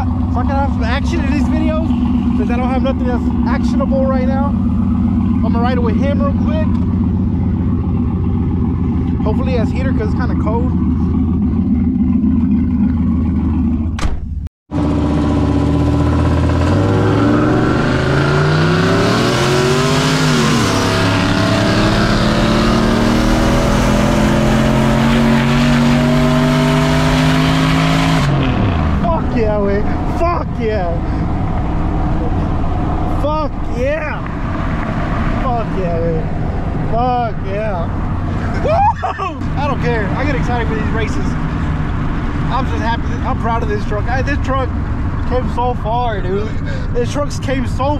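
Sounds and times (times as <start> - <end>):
voices: 0.0 - 4.6, 5.2 - 6.8, 9.1 - 10.8, 29.0 - 31.4, 32.1 - 34.3, 35.4 - 41.6, 42.4 - 47.9
engine pulling at full throttle: 0.0 - 47.9.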